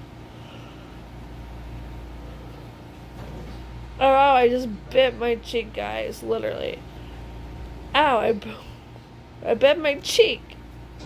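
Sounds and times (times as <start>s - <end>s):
low mechanical machine hum: 0.0s - 11.0s.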